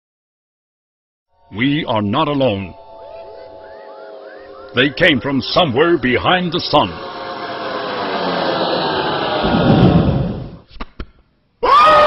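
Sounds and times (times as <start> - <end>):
faint hum: 1.3 - 10.6
rushing whoosh: 3.3 - 10.7.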